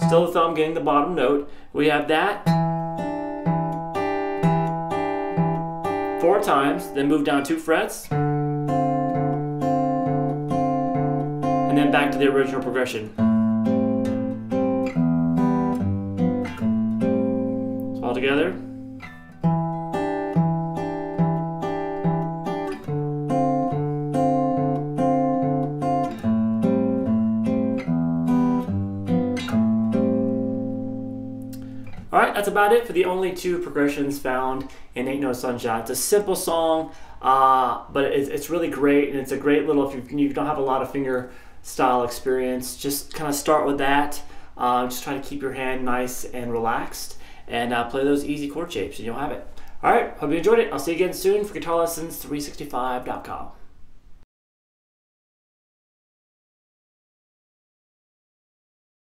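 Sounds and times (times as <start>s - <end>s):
fingerpicked acoustic guitar: 2.3s - 35.2s.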